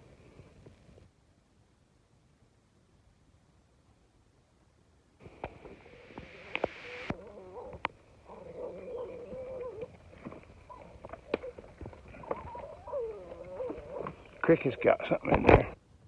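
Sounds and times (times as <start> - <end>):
puppy whining: 6.5 - 10.0, 10.6 - 14.4.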